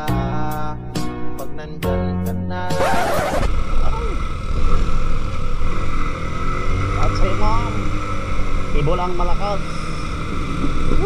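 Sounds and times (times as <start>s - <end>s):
motorcycle engine running: 2.8s - 11.0s
wind and road noise: 2.8s - 11.0s.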